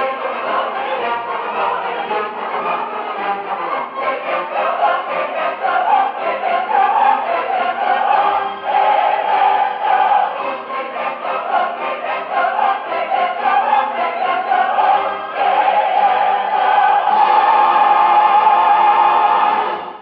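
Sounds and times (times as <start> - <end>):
opera chorus singing: 0.0 - 20.0
orchestra: 0.0 - 20.0.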